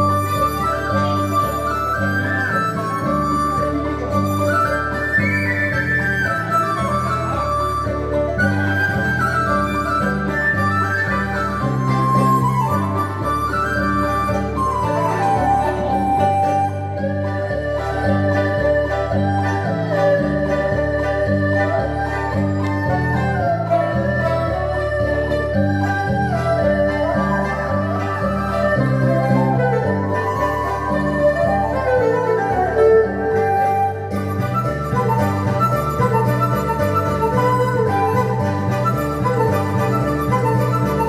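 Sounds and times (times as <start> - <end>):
bamboo flute: 0.0 - 41.0
erhu melody: 0.0 - 41.0
plucked lutes: 0.0 - 41.0.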